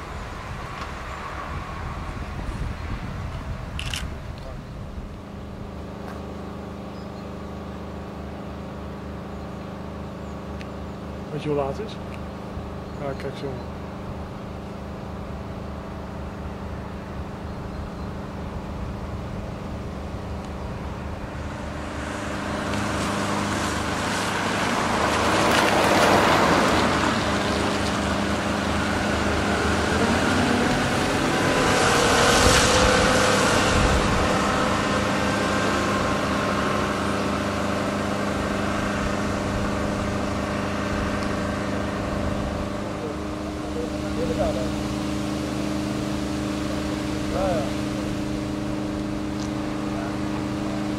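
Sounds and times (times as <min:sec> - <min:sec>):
excavator diesel engine running: 0:03.5 - 0:50.9.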